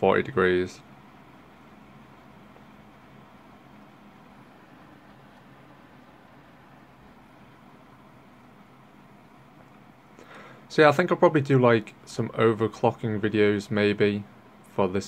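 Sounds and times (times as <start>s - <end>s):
computer cooling fans whirring: 0.0s - 15.0s
low hum: 0.0s - 15.0s.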